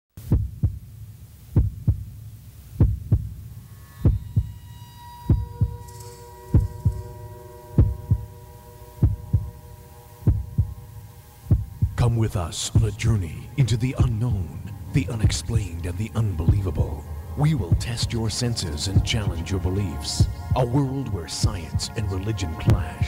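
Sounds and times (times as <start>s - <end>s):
heartbeat thumps: 0.2s - 0.9s, 1.5s - 4.6s, 5.3s - 5.8s, 6.6s - 7.1s, 7.8s - 8.3s, 9.0s - 9.6s, 10.2s - 10.8s, 11.5s - 12.1s, 12.7s - 13.1s, 14.0s - 14.3s, 15.0s - 15.8s, 16.4s - 18.3s, 18.9s - 19.4s, 20.2s - 20.7s, 21.4s - 21.9s, 22.6s - 23.0s
steady hum of held tones: 0.4s - 23.0s.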